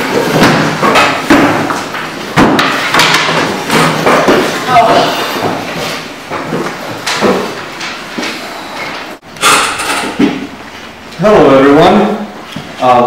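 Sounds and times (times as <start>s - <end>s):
sharp knocks and thuds: 0.0s - 7.6s
indistinct voices: 4.6s - 5.7s.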